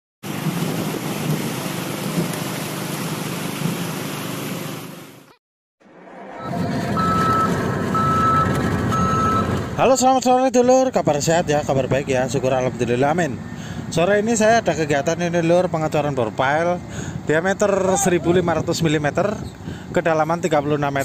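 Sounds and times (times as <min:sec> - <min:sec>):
heavy vehicle engine: 0:00.3 - 0:10.0
construction machinery noise: 0:00.4 - 0:10.0
reversing alarm beeping: 0:06.3 - 0:09.5.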